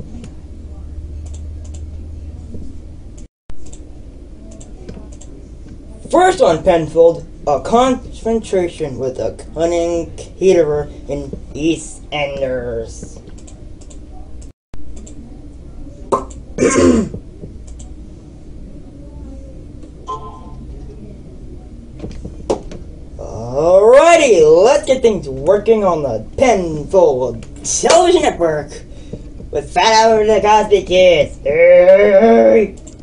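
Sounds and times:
steady low hum: 0:00.0 - 0:33.0
person coughing: 0:16.6 - 0:17.2.

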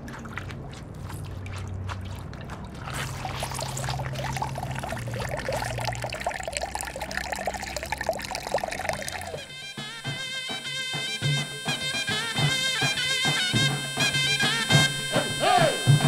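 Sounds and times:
liquid pouring into metal basin: 0:00.0 - 0:09.6
woodwind melody: 0:08.9 - 0:16.0.

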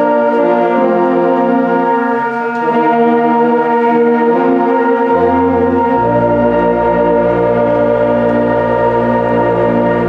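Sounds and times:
orchestra holding loud chord: 0:00.0 - 0:10.0.

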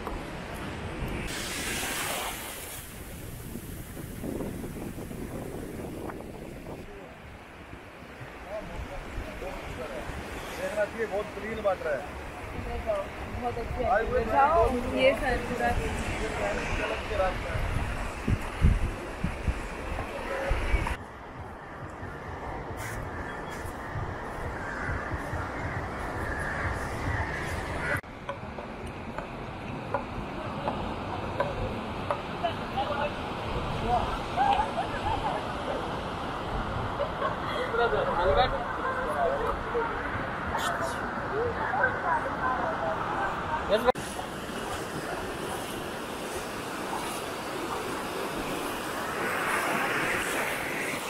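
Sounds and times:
beach noise: 0:00.0 - 0:51.0
wind rushing: 0:00.6 - 0:10.4, 0:12.1 - 0:28.1, 0:44.2 - 0:51.0
small waves breaking: 0:00.7 - 0:18.2, 0:42.3 - 0:51.0.

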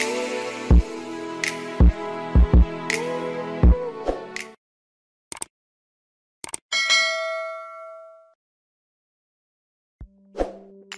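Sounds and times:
quick clicks: 0:06.4 - 0:06.6
bell ding: 0:06.7 - 0:08.4.

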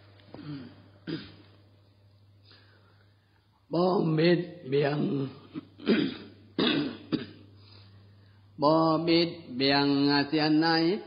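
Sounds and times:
man clearing throat: 0:00.3 - 0:01.6, 0:05.3 - 0:07.6
man reciting: 0:03.7 - 0:05.7, 0:08.6 - 0:11.0.

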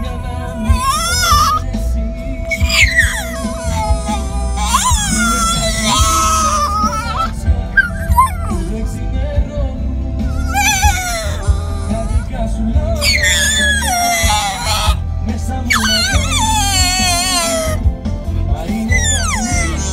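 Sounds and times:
song with steady bass: 0:00.0 - 0:19.9
puppy howling: 0:00.6 - 0:01.6, 0:02.5 - 0:08.8, 0:10.3 - 0:15.0, 0:15.7 - 0:17.8, 0:18.8 - 0:19.9.

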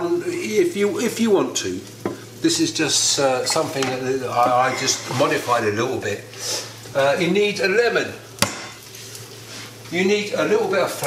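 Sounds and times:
onions sizzling in frying pan: 0:00.0 - 0:11.0.

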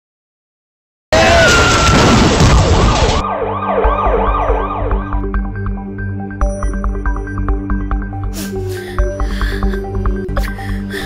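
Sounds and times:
ambulance siren yelping: 0:02.8 - 0:05.3.

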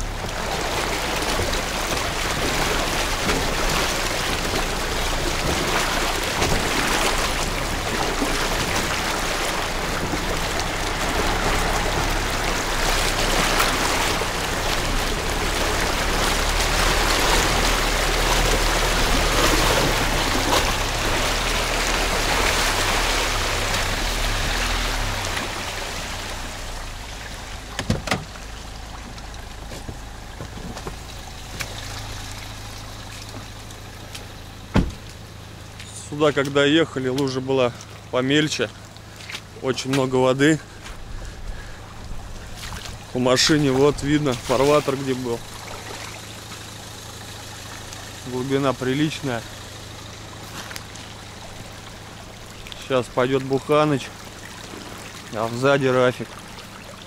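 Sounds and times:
car engine low hum: 0:00.0 - 0:57.0
water splashing against car: 0:00.0 - 0:57.0.

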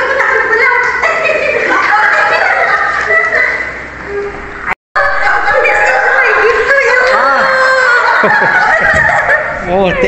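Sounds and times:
high-pitched excited voices: 0:00.0 - 0:10.0.

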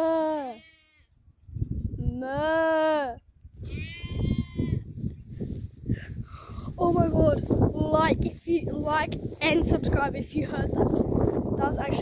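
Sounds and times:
lamb bleating: 0:00.2 - 0:01.1, 0:03.6 - 0:04.9
wind buffeting microphone: 0:01.1 - 0:12.0.

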